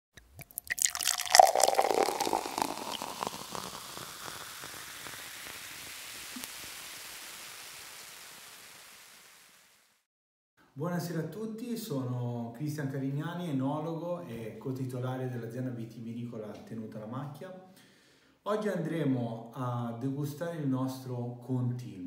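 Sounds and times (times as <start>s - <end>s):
sparkling wine fizzing in a glass: 0.2s - 10.1s.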